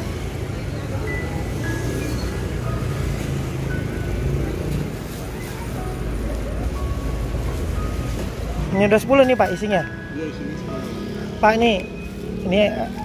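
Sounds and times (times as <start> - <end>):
low rumble of road traffic: 0.0 - 13.0.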